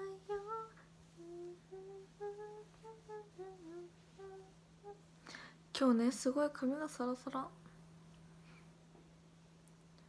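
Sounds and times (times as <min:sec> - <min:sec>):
woman humming: 0:00.0 - 0:05.1
faint steady low tone: 0:00.0 - 0:10.0.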